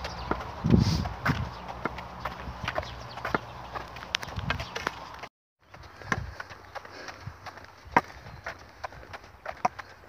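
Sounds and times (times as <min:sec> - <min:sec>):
footsteps on pavement: 0:00.0 - 0:10.0
walking stick tapping on pavement: 0:00.0 - 0:10.0.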